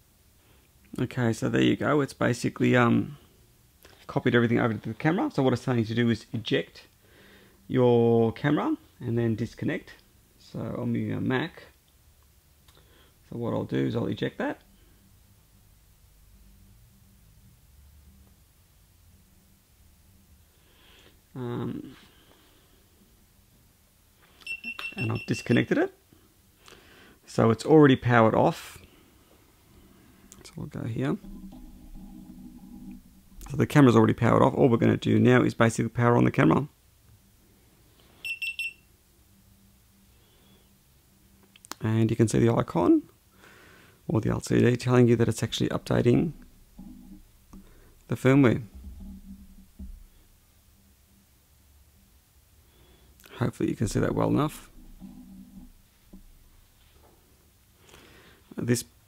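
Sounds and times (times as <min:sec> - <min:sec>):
low hum: 0:29.2 - 0:35.2, 0:44.2 - 0:57.0
soft low bump: 0:45.5 - 0:50.4, 0:53.8 - 0:56.8.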